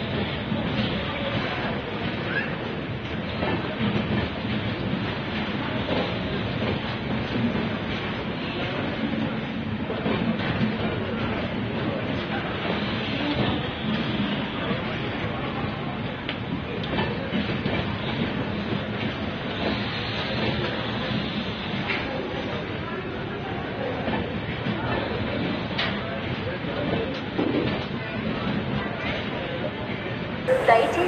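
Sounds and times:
train wheels rolling on rails: 0.0s - 22.1s.

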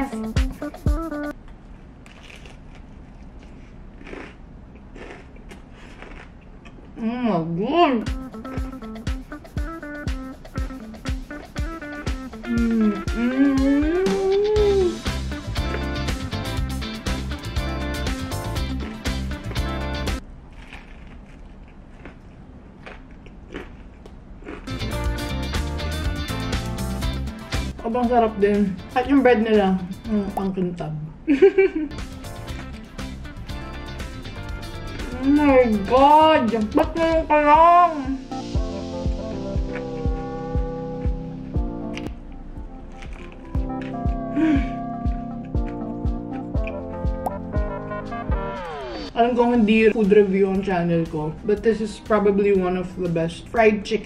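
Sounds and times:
background guitar music: 0.0s - 1.3s, 8.0s - 20.2s, 24.7s - 30.5s, 31.9s - 53.8s
chewing crispy food: 2.0s - 6.8s, 17.9s - 25.0s, 32.0s - 33.2s, 42.7s - 44.2s, 45.0s - 46.8s
mouth sounds: 11.7s - 15.2s.

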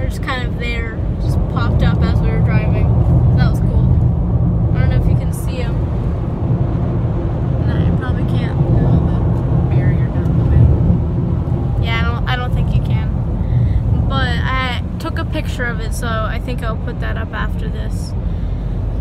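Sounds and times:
road and engine rumble: 0.0s - 19.0s.

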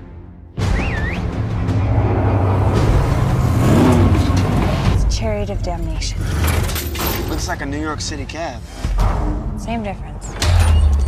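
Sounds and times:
car engine revving: 0.8s - 6.9s.

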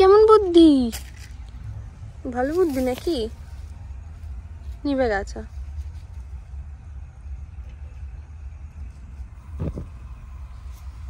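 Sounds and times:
wind buffeting microphone: 6.4s - 11.0s.

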